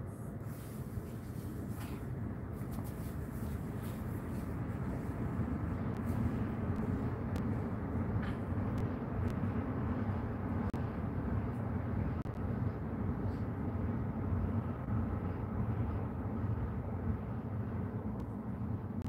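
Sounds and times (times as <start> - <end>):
low background rumble: 0.0 - 19.0.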